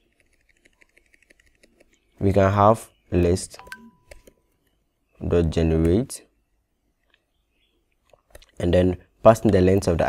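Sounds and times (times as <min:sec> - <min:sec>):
keyboard keys clicking: 0:00.0 - 0:02.1.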